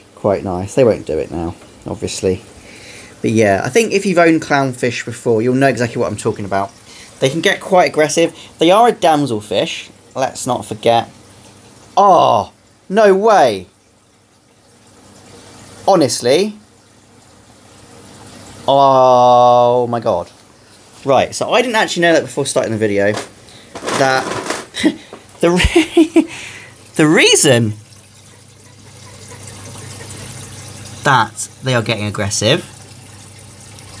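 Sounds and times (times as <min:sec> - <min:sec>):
low pump hum: 0:00.0 - 0:23.8, 0:24.7 - 0:34.0
aquarium water trickling: 0:00.0 - 0:34.0
person speaking: 0:21.0 - 0:27.9, 0:30.9 - 0:32.8.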